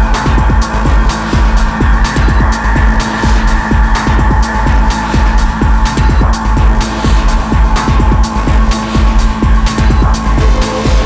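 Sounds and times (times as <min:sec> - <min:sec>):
driving low beat: 0:00.0 - 0:11.0
droning synth: 0:00.0 - 0:11.0
ticking hi-hats: 0:00.0 - 0:11.0.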